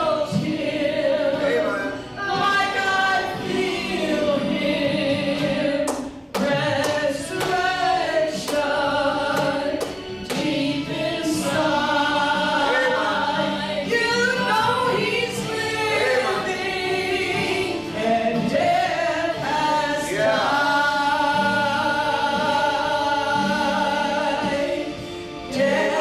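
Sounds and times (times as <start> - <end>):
women singing gospel: 0.0 - 26.0.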